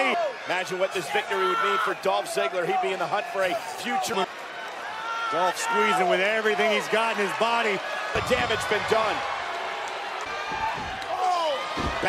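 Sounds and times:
arena noise: 0.0 - 12.0
body hitting wrestling ring: 10.3 - 12.0.

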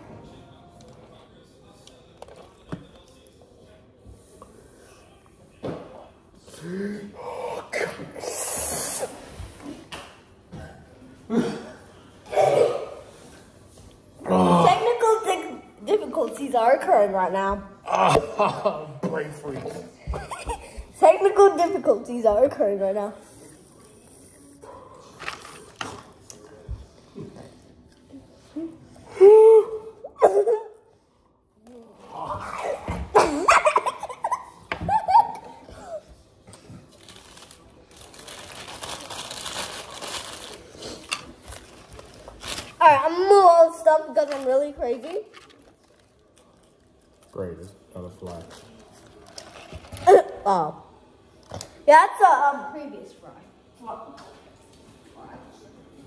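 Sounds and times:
noisy breathing: 6.5 - 9.5
wordless voices: 14.2 - 36.7.

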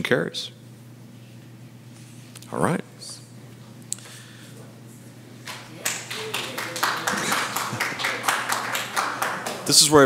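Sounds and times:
audience moving: 5.4 - 10.0
scattered clapping: 5.4 - 10.0.

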